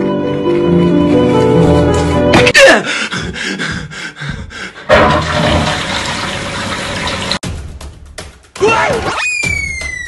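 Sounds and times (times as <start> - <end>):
water rushing: 4.9 - 7.4.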